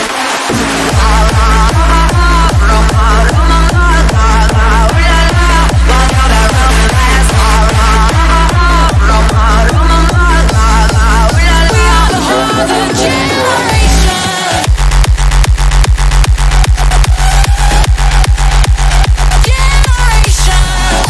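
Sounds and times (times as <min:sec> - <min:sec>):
trilling synth lead melody: 0:00.0 - 0:20.7
hard kick drum: 0:00.5 - 0:21.0.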